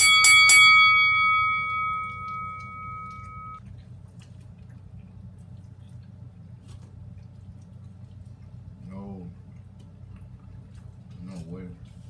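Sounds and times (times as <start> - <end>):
bell ringing: 0.0 - 3.6.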